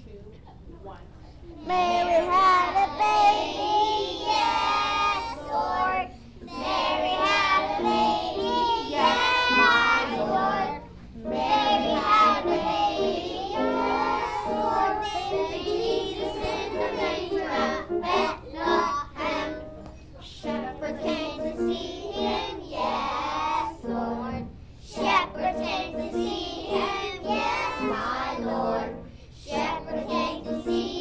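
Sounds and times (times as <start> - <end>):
children singing together: 1.6 - 31.0.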